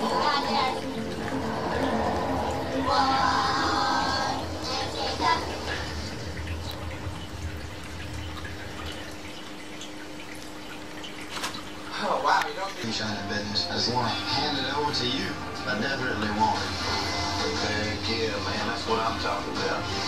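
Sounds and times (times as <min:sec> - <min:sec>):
low hum: 0:00.0 - 0:11.2
television voices: 0:00.0 - 0:20.0.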